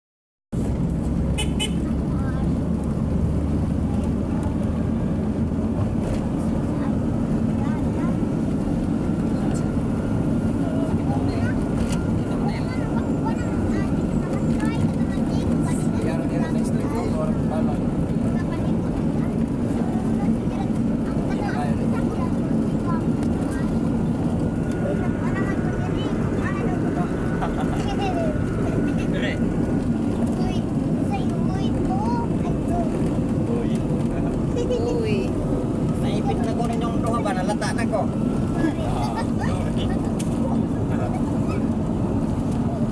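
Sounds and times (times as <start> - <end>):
road noise: 0.5 - 42.9
vehicle engine noise: 0.5 - 42.9.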